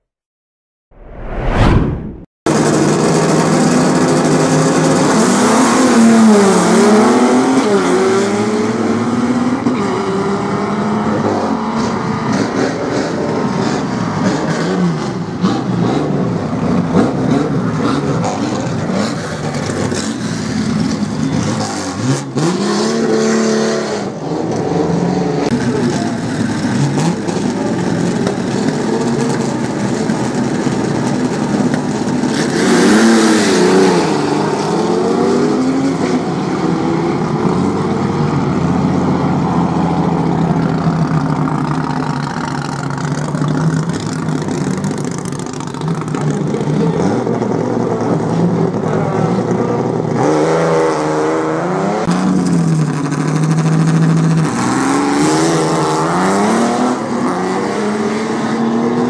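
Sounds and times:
drag racing car engines revving: 2.5s - 59.0s.

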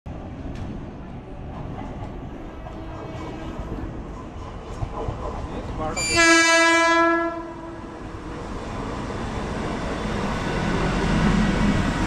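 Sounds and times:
train approaching: 0.1s - 12.0s
train horn: 6.0s - 7.9s.

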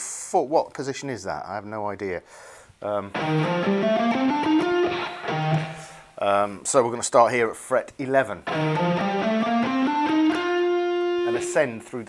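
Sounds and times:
electric guitar scale run: 3.1s - 6.0s, 8.4s - 11.5s.

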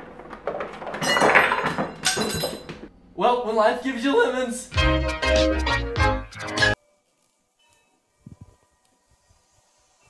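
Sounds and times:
lemons clattering into a bowl: 0.0s - 3.0s.

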